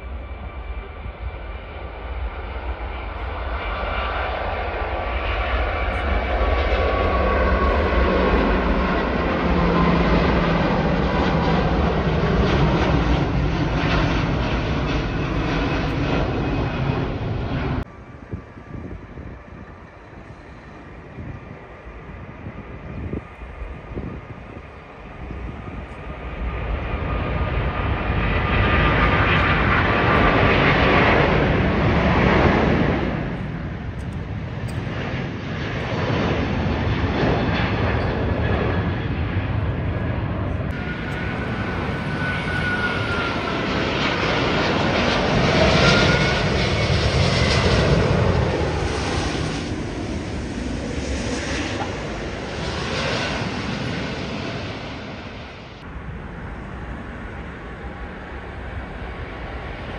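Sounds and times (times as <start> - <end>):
jet airliner taking off: 0.0 - 59.9.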